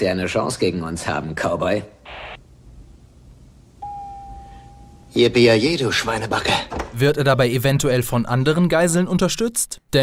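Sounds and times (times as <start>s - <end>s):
steady mid-pitched tone: 3.8s - 5.2s.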